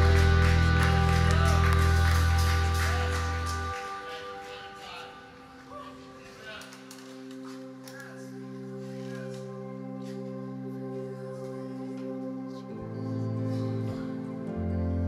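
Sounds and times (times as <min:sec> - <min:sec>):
heavy bass: 0:00.0 - 0:03.8
scattered claps: 0:00.0 - 0:05.0
live band holding a chord: 0:00.0 - 0:06.1.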